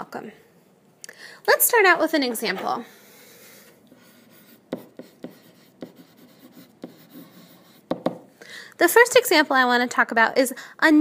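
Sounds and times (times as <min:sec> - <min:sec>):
stylus scratching on tablet: 0:03.9 - 0:08.2
stylus taps: 0:07.9 - 0:08.3.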